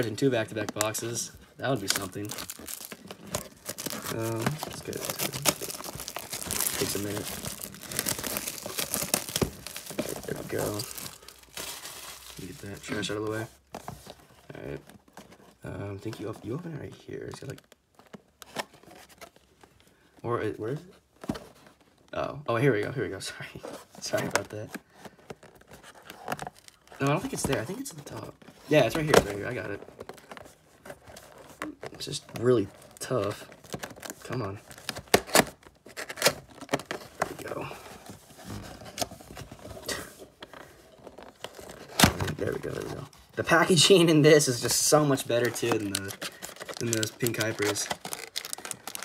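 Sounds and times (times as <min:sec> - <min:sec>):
cardboard rubbing and tearing: 0:02.0 - 0:11.2.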